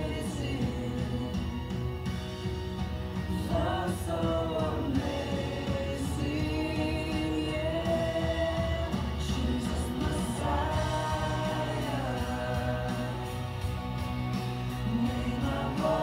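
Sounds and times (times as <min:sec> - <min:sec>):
instrumental backing music: 0:00.0 - 0:16.0
worship song singing: 0:00.0 - 0:16.0.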